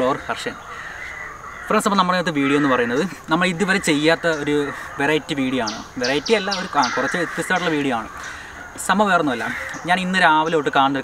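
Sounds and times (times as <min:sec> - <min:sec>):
man talking: 0:00.0 - 0:00.6, 0:01.7 - 0:11.0
bird calling: 0:00.0 - 0:11.0.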